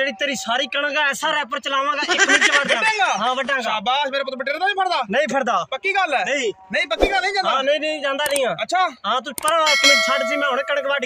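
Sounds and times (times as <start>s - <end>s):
mouse click: 8.2s - 8.4s, 9.4s - 9.6s
bell ding: 9.7s - 11.0s.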